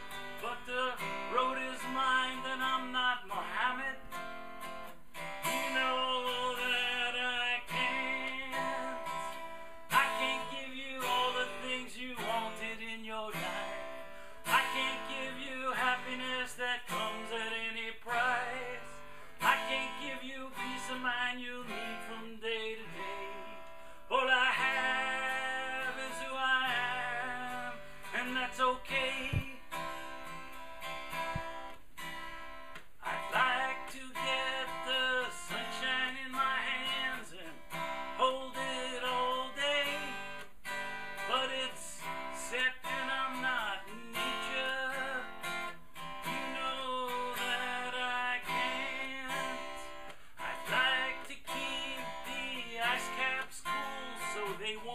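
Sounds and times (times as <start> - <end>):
man singing: 0.0 - 4.4, 5.3 - 31.4, 33.0 - 54.9
acoustic guitar strumming: 0.0 - 54.9.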